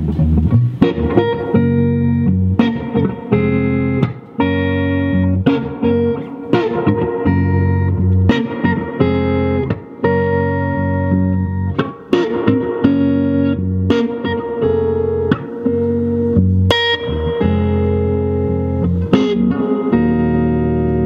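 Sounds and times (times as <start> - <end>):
electric guitar chords ringing: 0.0 - 21.0
electric guitar single-note runs: 0.0 - 21.0.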